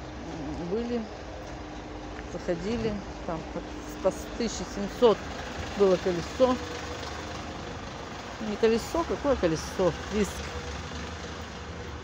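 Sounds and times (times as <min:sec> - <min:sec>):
street noise rumble: 0:00.0 - 0:12.0.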